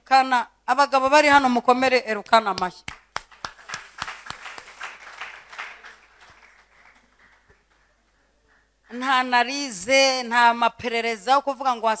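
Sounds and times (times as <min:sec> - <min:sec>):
sharp hand claps: 0:02.2 - 0:08.7
crowd applause: 0:03.0 - 0:08.7.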